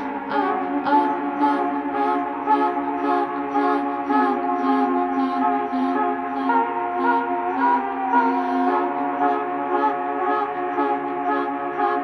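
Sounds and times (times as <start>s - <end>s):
ambient electronic drone music: 0.0s - 12.0s.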